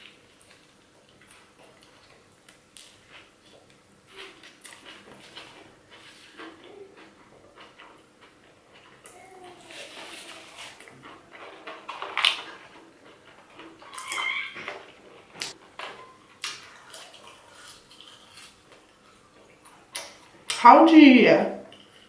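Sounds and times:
crunches of crispy food: 0.0s - 20.5s
chewing and mouth noises: 0.0s - 20.6s, 21.7s - 22.0s.

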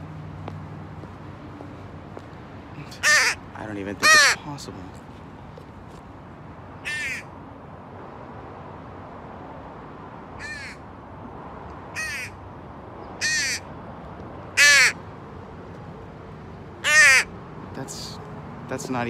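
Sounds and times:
crow cawing: 3.0s - 3.4s, 4.0s - 4.4s, 6.8s - 7.3s, 10.4s - 10.8s, 11.9s - 12.4s, 13.2s - 13.7s, 14.6s - 15.0s, 16.8s - 17.3s.

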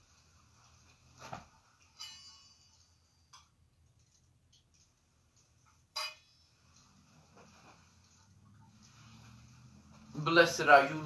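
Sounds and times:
metal vessels clinking: 5.8s - 7.1s.

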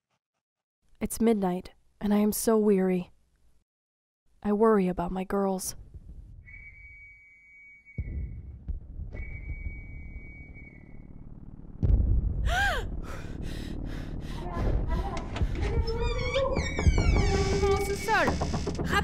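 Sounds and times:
long high whistle tones: 6.4s - 8.4s, 9.2s - 11.2s
rising and falling whistle: 6.4s - 11.3s
bombardment booms: 8.0s - 15.9s
heavy low rumble: 8.0s - 19.0s.

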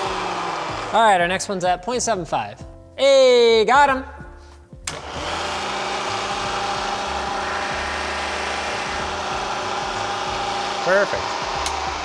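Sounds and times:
drill cutting aluminium: 0.0s - 1.0s, 4.9s - 12.0s
milling machine spindle running: 0.0s - 1.0s, 4.9s - 12.0s.

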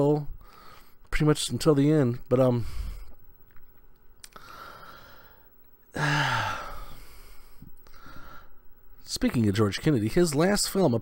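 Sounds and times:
man sighing: 5.9s - 8.3s.

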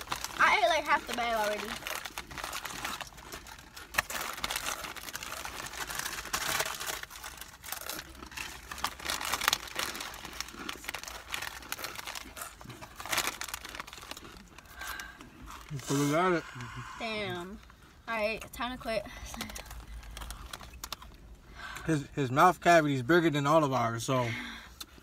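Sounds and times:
chip bags crinkling: 0.0s - 16.4s, 19.1s - 21.2s.

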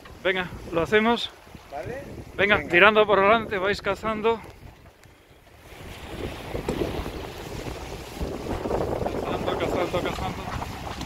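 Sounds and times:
sea washing past boat: 0.0s - 11.0s
wind buffeting microphone: 0.0s - 11.0s.

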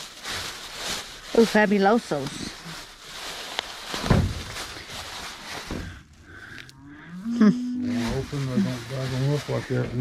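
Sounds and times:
plastic bags rustling: 0.0s - 6.7s, 7.8s - 10.0s.

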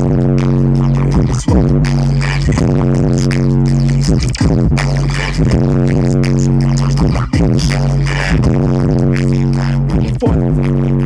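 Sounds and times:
bass-heavy music through car speakers: 0.0s - 11.0s.

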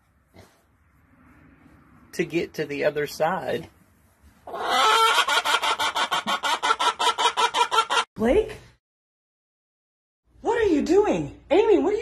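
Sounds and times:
hen cackling: 4.4s - 8.1s.

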